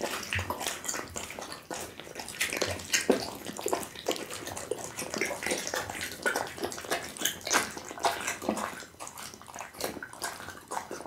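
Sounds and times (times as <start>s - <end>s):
dog chewing raw meat: 0.0s - 11.0s.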